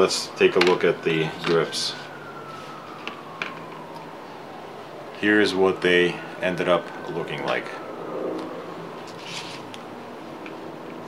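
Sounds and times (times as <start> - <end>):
faint tone gliding downward: 5.6 - 9.0.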